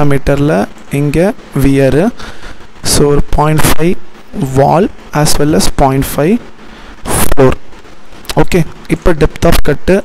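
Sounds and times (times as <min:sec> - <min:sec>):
man speaking: 0:00.0 - 0:10.0.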